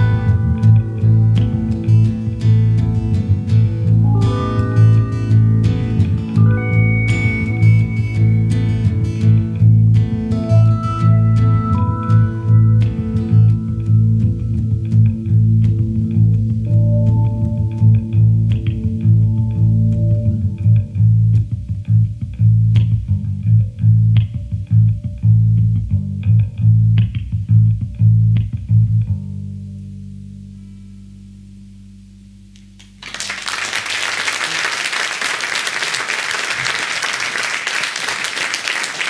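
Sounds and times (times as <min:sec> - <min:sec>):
live rock band playing: 0:00.0 - 0:21.2
heavy rhythmic bass notes: 0:00.0 - 0:33.0
audience applause: 0:33.0 - 0:39.0.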